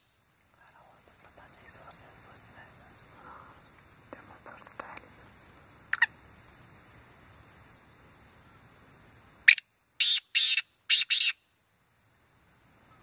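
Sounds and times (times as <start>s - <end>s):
faint ticks: 0.4s - 5.7s
francolin calling: 5.2s - 6.2s, 9.5s - 11.5s.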